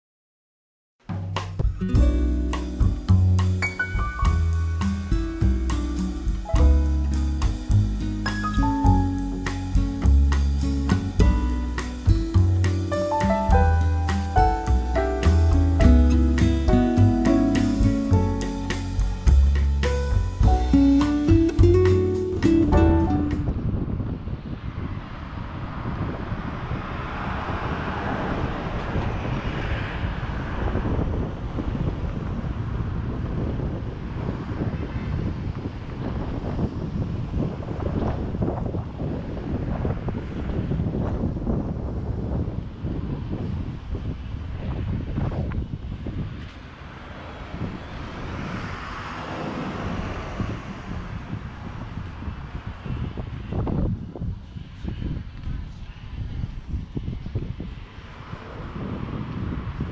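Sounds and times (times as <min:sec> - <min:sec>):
wind buffeting microphone: 0:01.6 - 0:59.9
road traffic going by: 0:02.2 - 0:59.9
loud vehicle passing: 0:10.7 - 0:37.8, 0:42.8 - 0:53.9.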